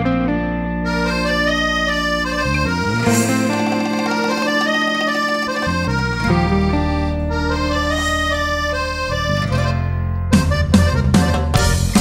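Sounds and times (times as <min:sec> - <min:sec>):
accordion music: 0:00.0 - 0:12.0
sharp drum strokes: 0:03.0 - 0:05.2.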